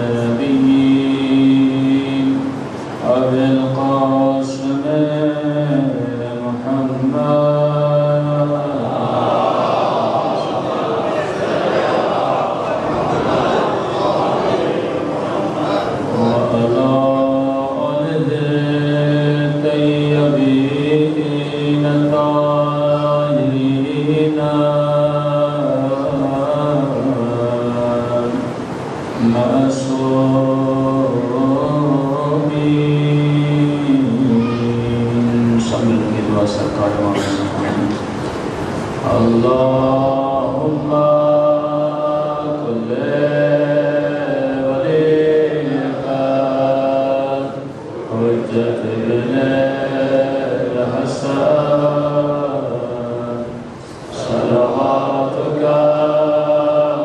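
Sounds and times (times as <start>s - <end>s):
voices chanting: 0.0s - 57.0s.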